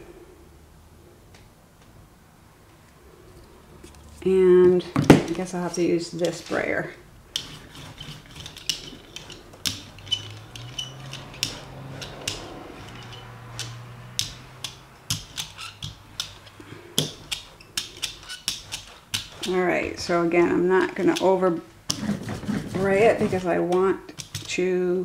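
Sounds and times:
paint roller sticky crackles: 3.8s - 24.7s.

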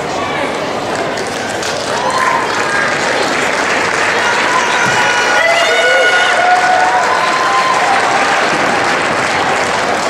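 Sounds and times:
audience applauding: 0.9s - 10.0s.

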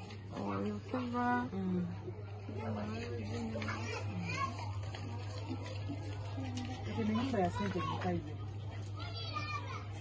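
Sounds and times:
steady low hum: 0.0s - 7.0s.

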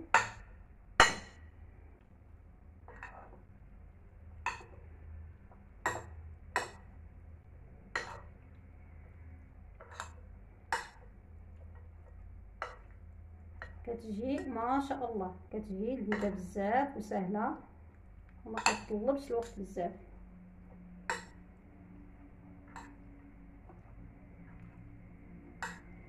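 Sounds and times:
metal spoons clinking on bowl: 8.0s - 8.3s, 16.0s - 16.5s, 18.5s - 19.6s.

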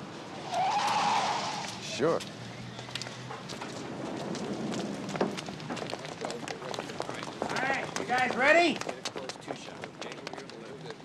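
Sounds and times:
footsteps on wet pavement: 0.8s - 11.0s.

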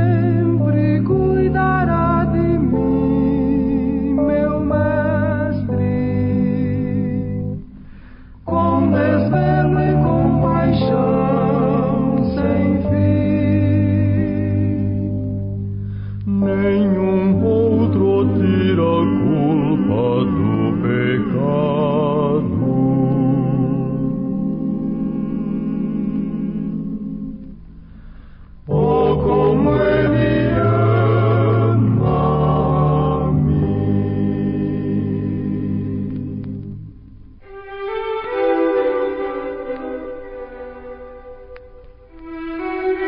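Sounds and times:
music: 0.0s - 43.0s
slow sung hymn: 0.0s - 43.0s.

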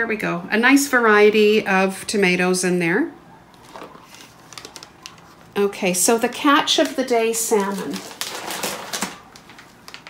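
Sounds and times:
plastic bag crinkling: 3.6s - 10.0s.

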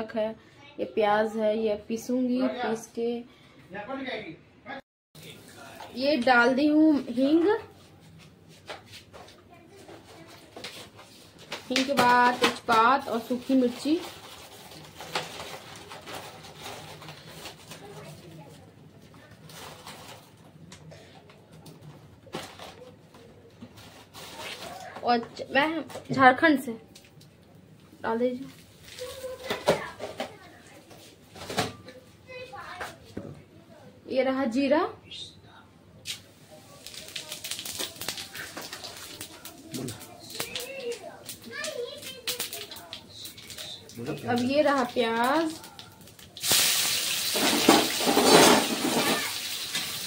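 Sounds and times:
hot oil sizzling: 36.1s - 50.0s.

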